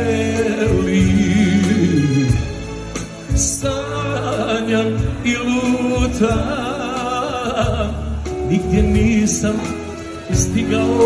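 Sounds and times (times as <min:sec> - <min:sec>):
man singing into microphone: 0:00.0 - 0:02.6, 0:03.3 - 0:11.0
band playing pop-folk music: 0:00.0 - 0:11.0.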